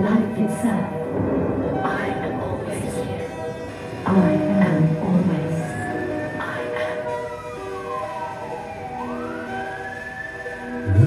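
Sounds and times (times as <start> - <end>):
siren-like gliding tone: 0.8 - 11.0.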